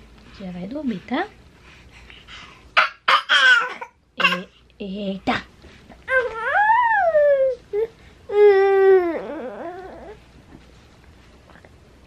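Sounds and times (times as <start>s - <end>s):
baby whimpering cry: 6.1s - 10.2s.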